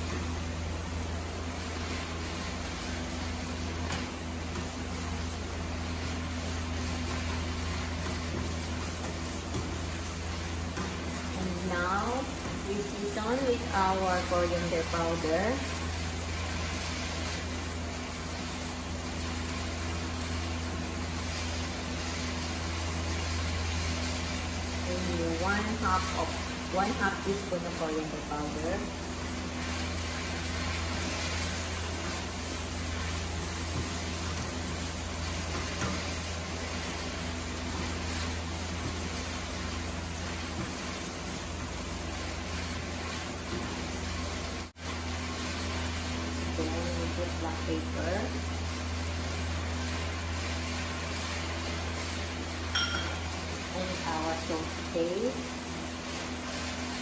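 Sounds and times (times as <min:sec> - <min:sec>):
chicken frying in a pan: 0:00.0 - 0:57.0.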